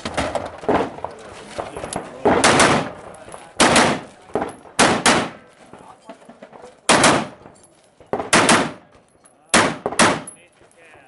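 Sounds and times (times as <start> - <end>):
rifle shots with echo: 0.1 - 5.5, 6.9 - 8.9, 9.5 - 10.4.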